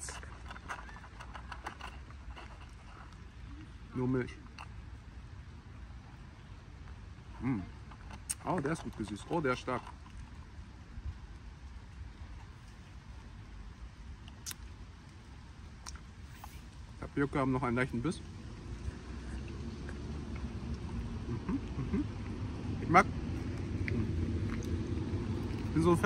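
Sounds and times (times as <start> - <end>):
chewing tapioca pearls: 7.5 - 13.0, 14.1 - 16.9, 18.8 - 22.4, 23.2 - 26.0
steady low rumble: 9.9 - 26.0.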